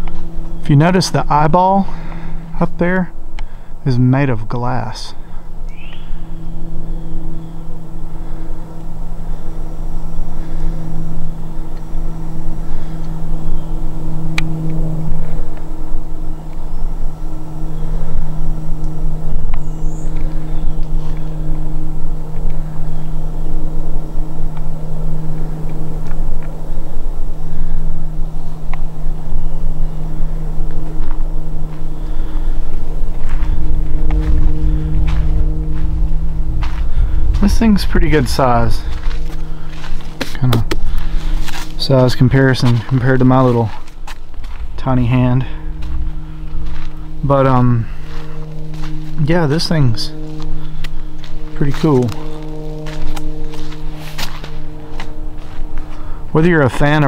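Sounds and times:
low mechanical hum: 0:00.0 - 0:57.0
low rumble: 0:00.0 - 0:57.0.

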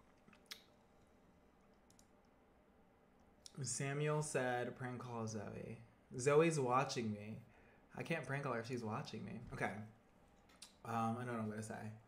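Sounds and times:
faint clicks: 0:01.7 - 0:02.4.

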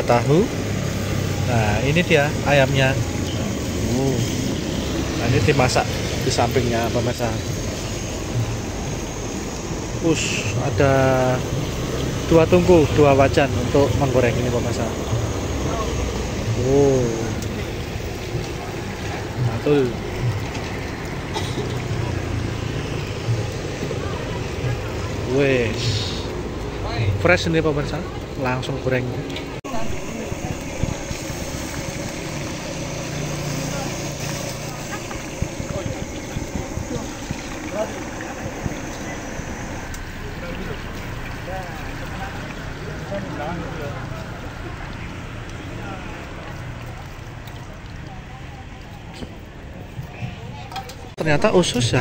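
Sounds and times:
gas burner rushing: 0:00.0 - 0:46.6
oil sizzling: 0:00.0 - 0:49.2
street noise: 0:00.0 - 0:52.0
voices: 0:00.0 - 0:52.0.

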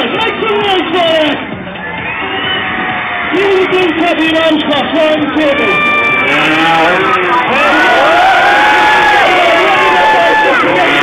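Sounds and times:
crowd cheering and shouting: 0:00.0 - 0:11.0.

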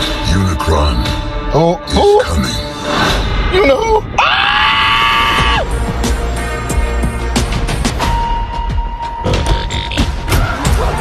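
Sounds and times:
loud trailer music: 0:00.0 - 0:11.0
high-pitched scream: 0:04.2 - 0:05.6.

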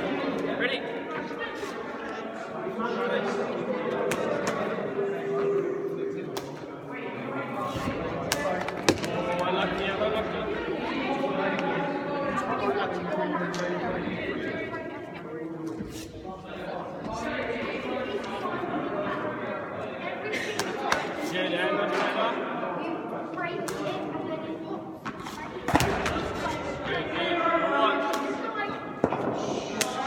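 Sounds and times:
voices talking in echoing hall: 0:00.0 - 0:30.0.

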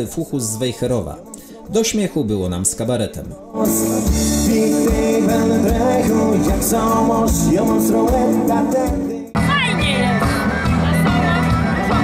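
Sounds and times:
person singing: 0:03.2 - 0:12.0
acoustic guitar: 0:03.3 - 0:12.0
bass: 0:03.6 - 0:12.0
drums with a steady beat: 0:03.6 - 0:12.0.

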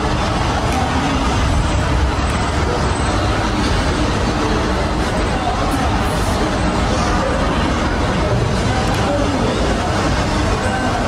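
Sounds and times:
crowded hall rumble: 0:00.0 - 0:11.0.

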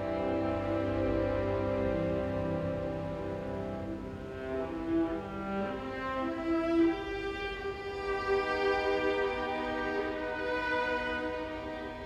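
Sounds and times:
string orchestra long bowed notes: 0:00.0 - 0:12.0.

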